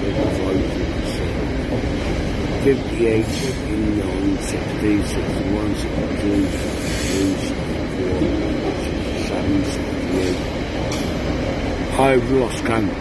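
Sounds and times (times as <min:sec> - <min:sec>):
train wheels rumbling on rail: 0:00.0 - 0:13.0.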